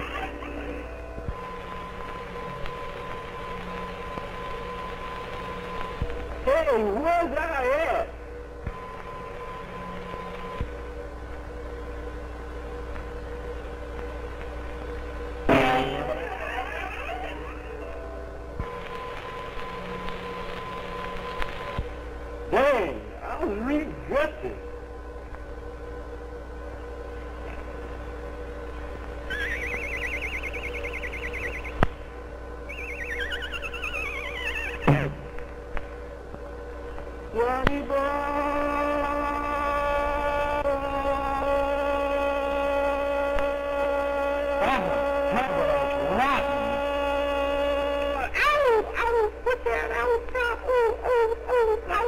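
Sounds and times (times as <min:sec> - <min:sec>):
faint held tones: 0:00.0 - 0:06.9, 0:08.0 - 0:11.0, 0:14.7 - 0:22.5, 0:24.7 - 0:37.2
film soundtrack hum and hiss: 0:00.0 - 0:52.0
loud pitched sound: 0:15.5 - 0:21.8, 0:29.3 - 0:32.0, 0:32.6 - 0:35.4
cartoon whistle warbling: 0:29.3 - 0:31.8, 0:32.7 - 0:35.1.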